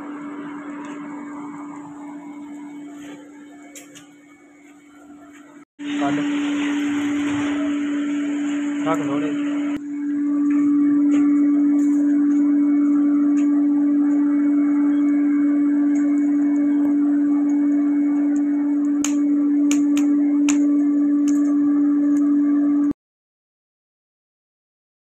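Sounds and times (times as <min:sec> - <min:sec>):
electric air blower humming: 0:05.8 - 0:22.8
charcoal popping: 0:18.2 - 0:21.6.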